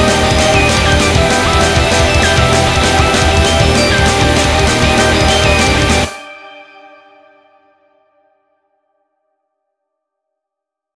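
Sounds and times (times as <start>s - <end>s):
band playing dream-pop song: 0.0s - 6.5s.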